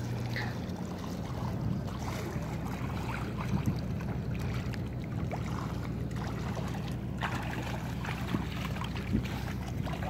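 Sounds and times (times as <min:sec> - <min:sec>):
faint water splashes: 0:00.0 - 0:10.0
low rumble of river air: 0:00.0 - 0:10.0
small water clicks: 0:00.0 - 0:10.0.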